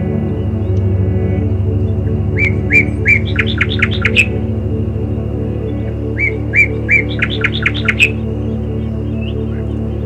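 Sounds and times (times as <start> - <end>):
soft ambient music: 0.0 - 10.0
songbird chirping: 0.0 - 10.0.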